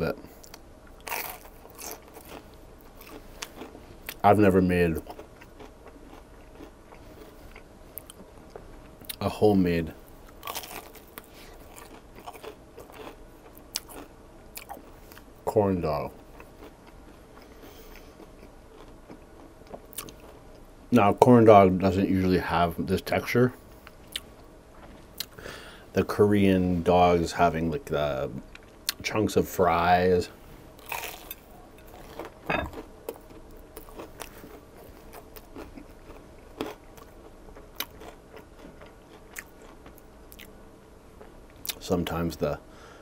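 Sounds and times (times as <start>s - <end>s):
soft chewing with wet clicks: 5.0s - 9.2s, 10.2s - 15.3s, 16.3s - 20.7s, 23.8s - 25.4s, 30.8s - 40.6s.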